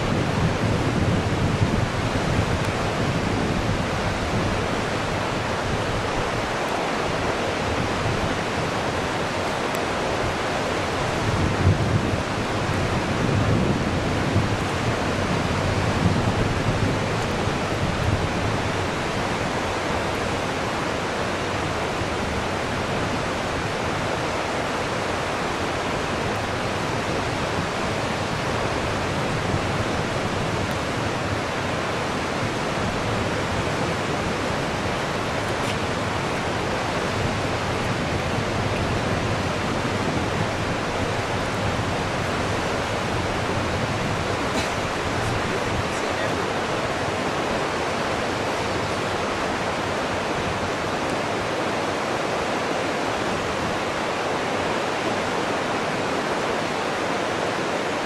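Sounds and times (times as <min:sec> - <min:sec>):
river water rushing: 0:00.0 - 0:58.0.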